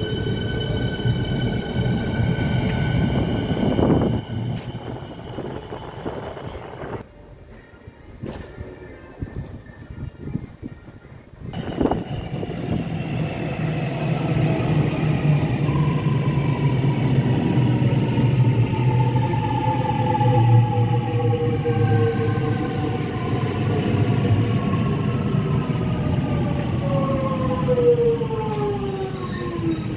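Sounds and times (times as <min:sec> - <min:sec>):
train arriving with loud rush: 0:00.0 - 0:10.3, 0:11.4 - 0:29.9.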